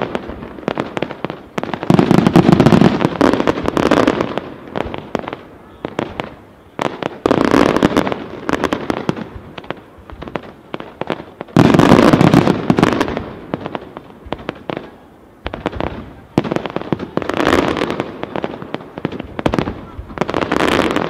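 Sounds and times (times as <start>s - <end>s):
fireworks crackling and bursting: 0.0s - 21.0s.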